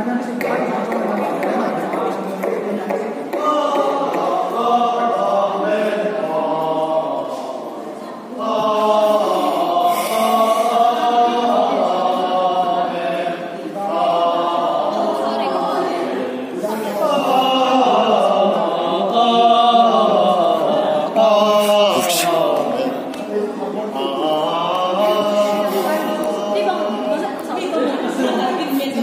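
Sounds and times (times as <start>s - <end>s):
people talking: 0.0s - 5.2s, 21.6s - 29.0s.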